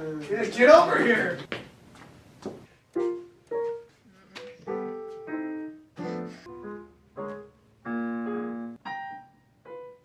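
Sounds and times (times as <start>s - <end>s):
digital piano chords and notes: 3.0s - 10.0s.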